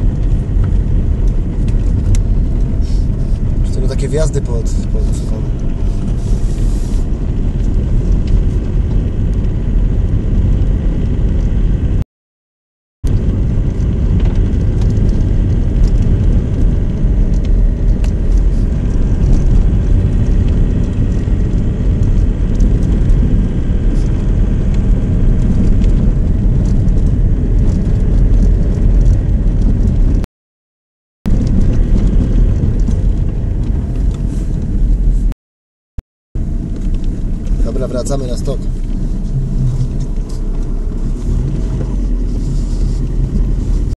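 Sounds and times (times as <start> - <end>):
car engine and tyres rumbling: 0.0 - 12.0, 13.0 - 30.2, 31.3 - 35.4, 36.4 - 44.0.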